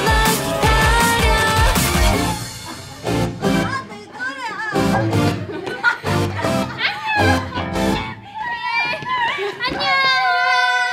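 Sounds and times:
young women calling and chattering: 0.0s - 10.9s.

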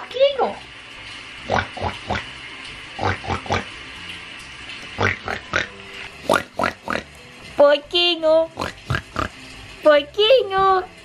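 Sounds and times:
person imitating pig oinking: 1.4s - 2.3s, 3.0s - 3.7s, 5.0s - 7.1s, 8.5s - 9.4s.

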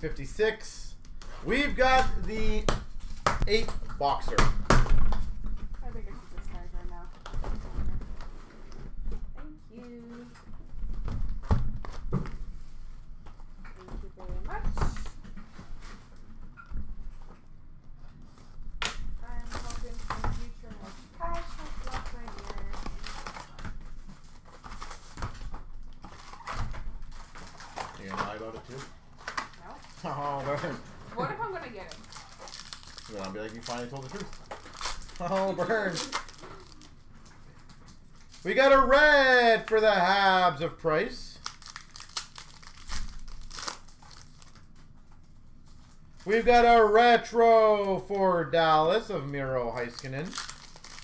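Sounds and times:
plastic wrap crinkling: 19.2s - 39.8s, 41.3s - 46.4s, 49.2s - 51.0s.

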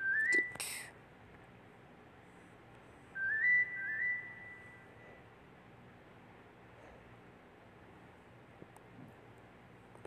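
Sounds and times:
high whistle-like tone: 0.0s - 0.6s, 3.1s - 5.2s.

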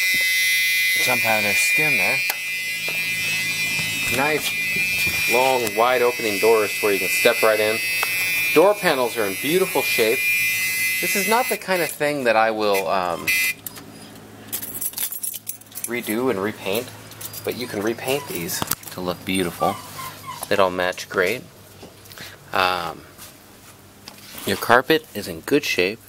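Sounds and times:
car warning buzzer: 0.0s - 12.1s, 12.7s - 13.6s
keys jingling: 14.5s - 16.1s, 16.7s - 17.6s.

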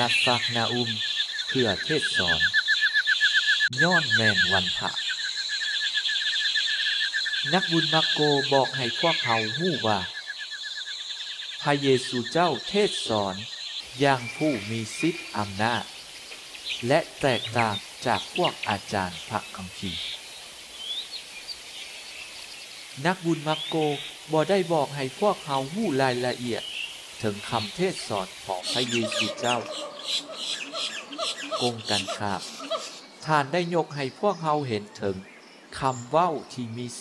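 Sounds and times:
rapid chirping: 0.0s - 34.0s
outdoor background hiss: 0.0s - 37.0s
person speaking: 11.7s - 15.9s, 16.8s - 20.1s, 23.0s - 26.6s, 27.2s - 29.8s, 31.5s - 32.6s.

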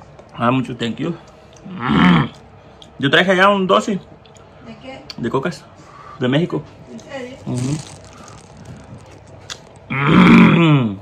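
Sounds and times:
man speaking: 7.4s - 8.0s.

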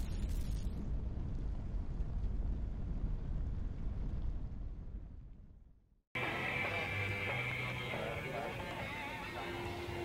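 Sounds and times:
flames rumbling: 0.0s - 6.4s.

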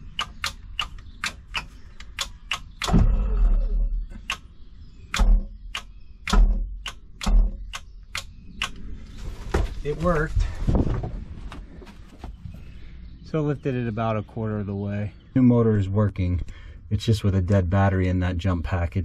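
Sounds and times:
switch and relay clicking: 0.0s - 3.0s, 4.1s - 4.5s, 5.1s - 8.8s.

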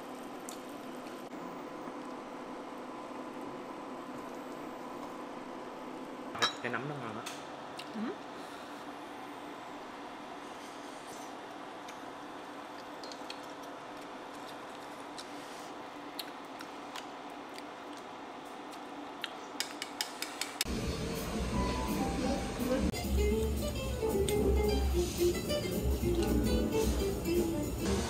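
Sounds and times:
restaurant background hum: 0.0s - 28.0s
tableware clinking: 6.4s - 6.7s
background music with plucked melody: 21.6s - 28.0s.

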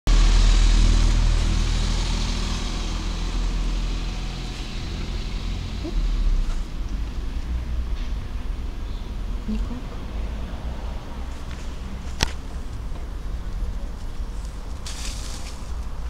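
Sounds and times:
passing vehicle rushing: 0.1s - 16.0s.

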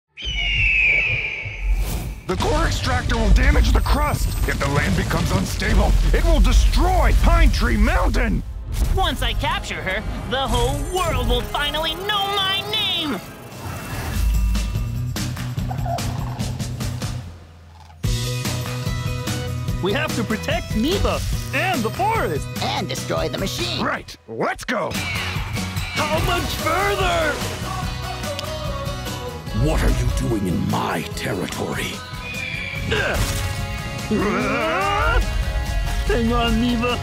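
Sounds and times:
deep boom: 0.2s - 10.8s.

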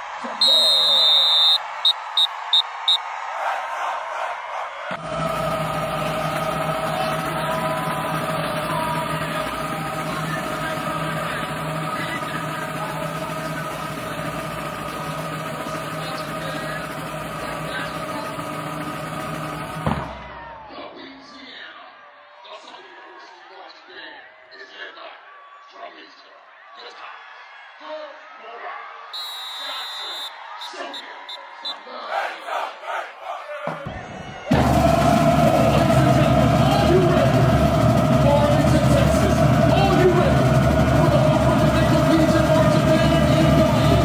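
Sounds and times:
stadium crowd noise: 0.0s - 44.0s
whistle blasts: 0.4s - 3.1s, 29.1s - 31.8s
marching band music: 5.0s - 20.3s, 29.2s - 44.0s.

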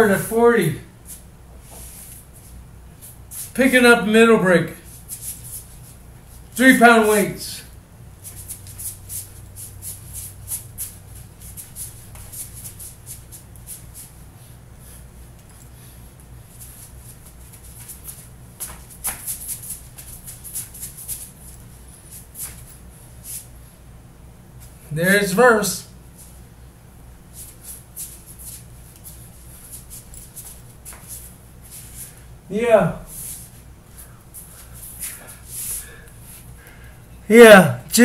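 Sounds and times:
steady low hum: 0.0s - 38.0s
rhythmic swishing and shuffling: 4.8s - 7.5s, 8.1s - 14.8s, 15.4s - 23.6s, 27.2s - 36.6s.

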